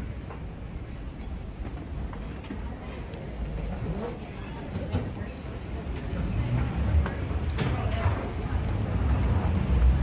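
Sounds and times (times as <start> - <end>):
low rumble of terminal noise: 0.0 - 10.0.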